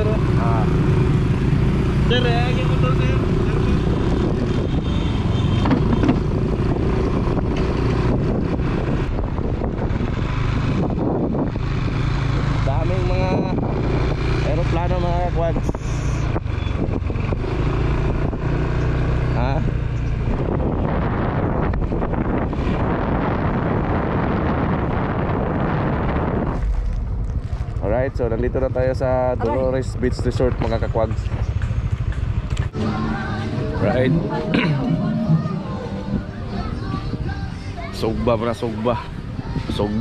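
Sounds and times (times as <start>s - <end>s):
motorcycle engine running: 0.0s - 37.5s
road and wind noise: 0.0s - 40.0s.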